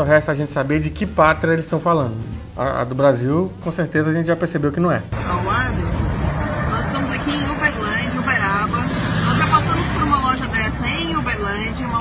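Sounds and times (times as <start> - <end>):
indistinct voices: 5.1 - 12.0
low rumble of vehicles: 5.1 - 12.0.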